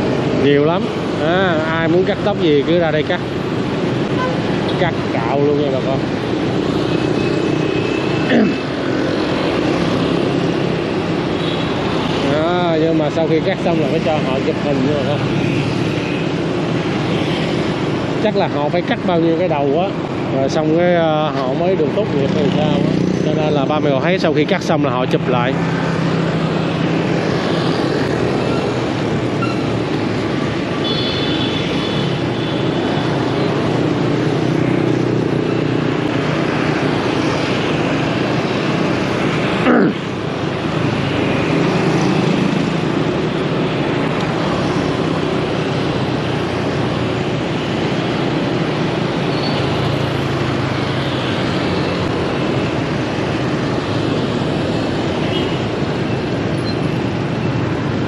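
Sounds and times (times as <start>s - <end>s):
motorbike and car engines: 0.0s - 58.0s.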